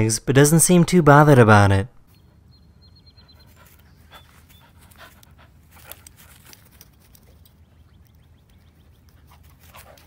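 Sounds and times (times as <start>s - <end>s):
dog panting: 2.9s - 10.0s.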